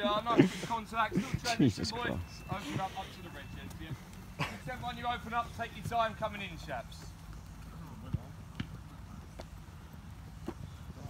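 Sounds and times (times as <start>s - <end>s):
faint distant voices: 0.0s - 11.0s
footballs being kicked: 6.9s - 11.0s.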